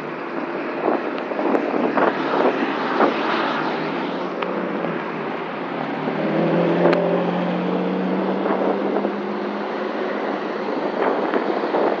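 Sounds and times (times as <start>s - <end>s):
street traffic noise: 0.0s - 12.0s
car engine passing: 1.7s - 12.0s.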